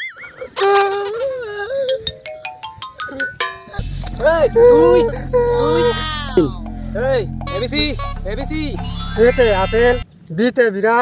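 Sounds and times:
comedic synthesized music: 3.1s - 10.0s.

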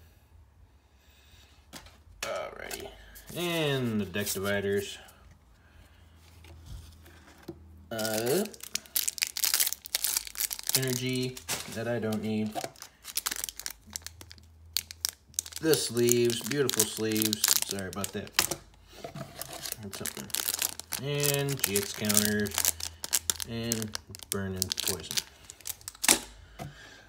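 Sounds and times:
plastic wrapper crinkling: 7.9s - 26.4s.

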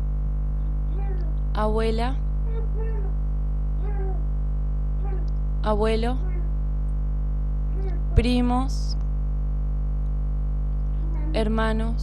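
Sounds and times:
low electrical hum: 0.0s - 12.0s
faint human voice: 0.9s - 1.4s, 2.4s - 3.2s, 3.8s - 4.3s, 5.0s - 5.3s, 6.1s - 6.6s, 7.7s - 8.2s.

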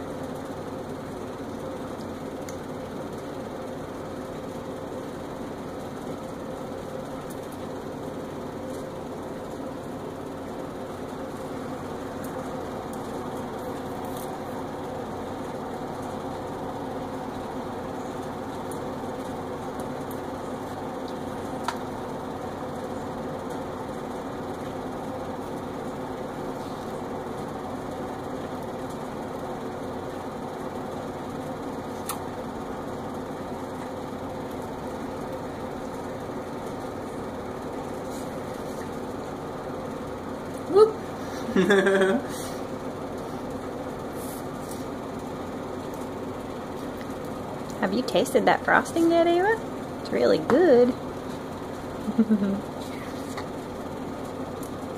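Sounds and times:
steady mechanical hum: 0.0s - 54.9s.

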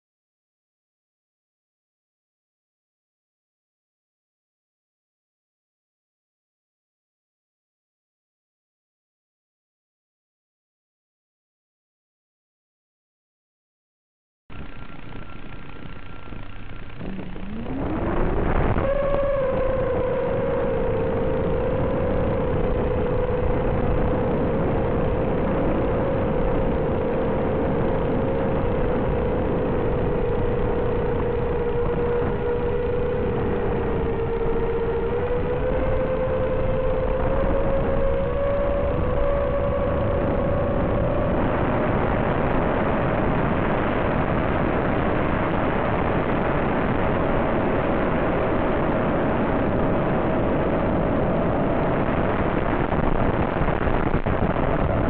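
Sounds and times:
electric motor and propeller whine: 14.5s - 55.0s.

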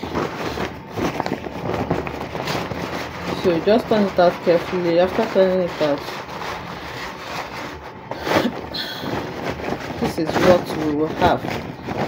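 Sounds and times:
cloth crumpling: 0.0s - 12.0s
fabric rustling: 0.0s - 12.0s.

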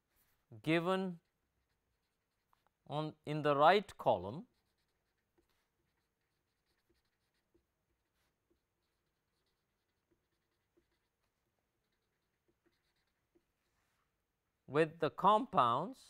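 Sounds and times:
marker writing on paper: 1.1s - 2.9s, 3.8s - 14.2s.

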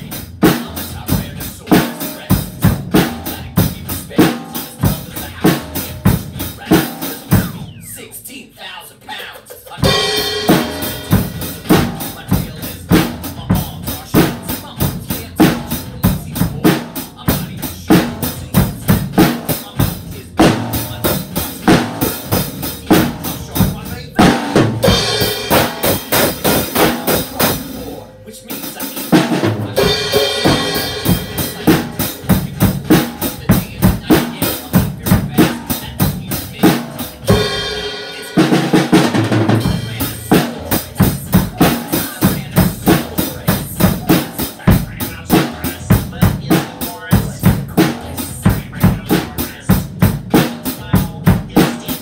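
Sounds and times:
drum kit playing fast beat: 0.0s - 8.2s, 9.1s - 52.0s
song playing: 0.0s - 52.0s.

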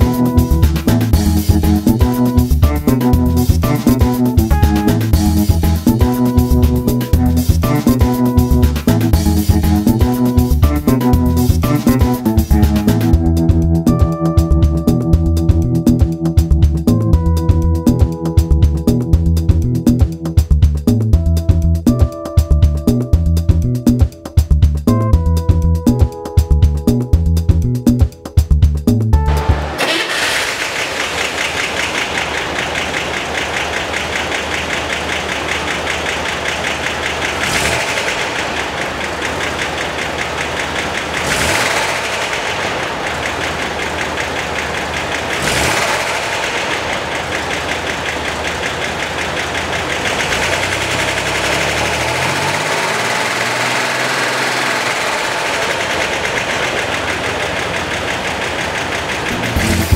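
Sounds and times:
car engine running and revving: 0.0s - 59.9s.

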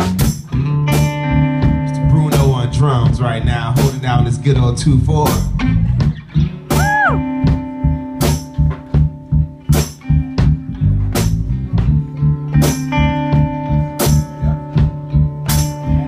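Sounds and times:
blues band playing: 0.0s - 16.0s
drum kit beat: 0.0s - 16.0s
electric guitar: 0.0s - 16.0s
walking bass line: 0.0s - 16.0s.

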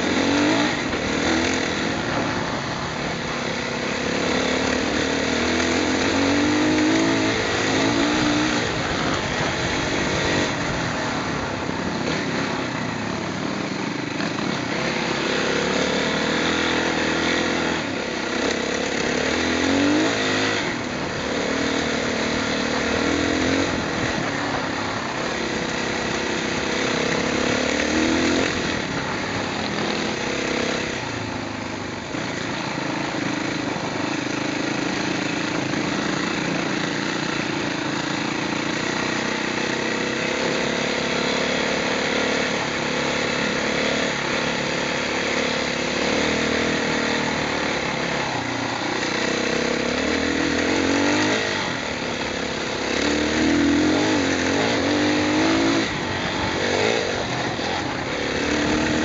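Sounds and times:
constant noisy rush: 0.0s - 59.0s
motorcycle engine revving: 0.0s - 59.0s.

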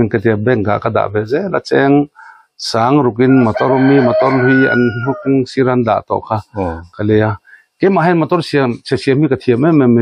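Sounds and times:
man talking: 0.0s - 10.0s
rooster crowing: 3.2s - 5.4s.

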